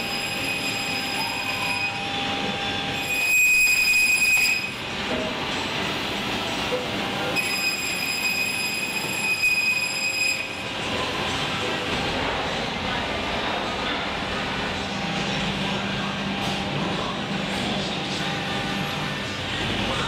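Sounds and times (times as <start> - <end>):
high-pitched machine whine: 0.0 - 20.0
woodworking machinery running: 0.0 - 20.0.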